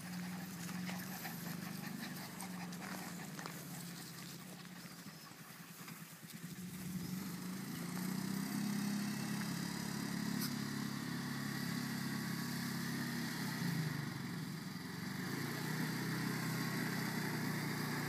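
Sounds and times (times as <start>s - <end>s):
engine humming: 0.0s - 18.0s.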